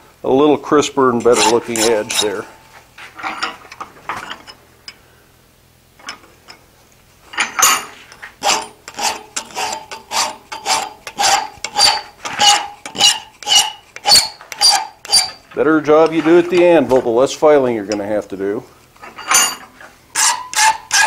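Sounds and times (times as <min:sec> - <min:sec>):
hand file on steel: 0:01.2 - 0:02.6, 0:08.4 - 0:16.5, 0:19.2 - 0:21.0.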